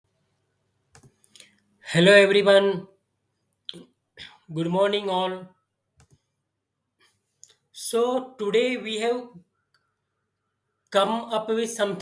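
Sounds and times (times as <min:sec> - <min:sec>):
computer mouse clicks: 0:00.9 - 0:01.6, 0:06.0 - 0:06.3.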